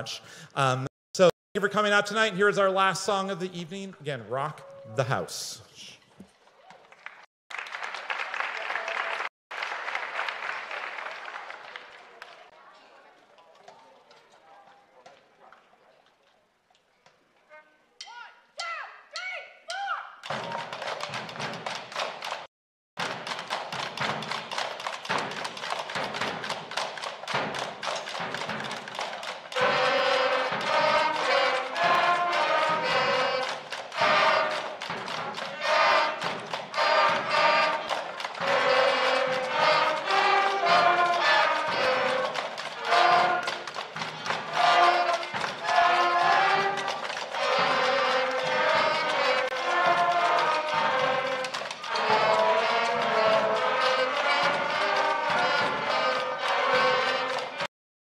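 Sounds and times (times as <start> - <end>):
drums beating: 0.0 - 5.5, 19.7 - 57.7
school concert band playing: 0.0 - 5.5, 23.0 - 57.7.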